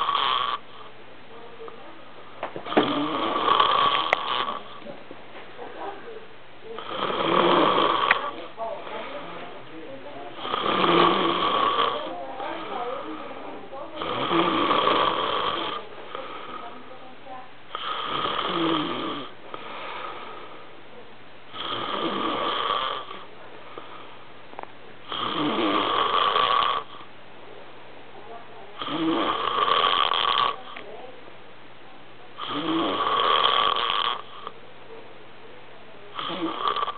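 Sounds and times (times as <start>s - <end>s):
man snoring: 0.0s - 0.6s, 2.6s - 4.8s, 6.8s - 8.4s, 10.4s - 12.1s, 14.0s - 16.6s, 17.7s - 20.5s, 21.5s - 23.2s, 25.1s - 27.0s, 28.8s - 30.6s, 32.4s - 34.5s, 36.2s - 36.9s
quiet breathing: 0.0s - 25.3s.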